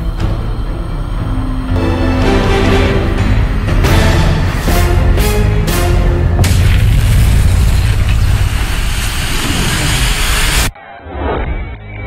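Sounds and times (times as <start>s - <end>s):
deep bass rumbling: 0.0s - 10.7s.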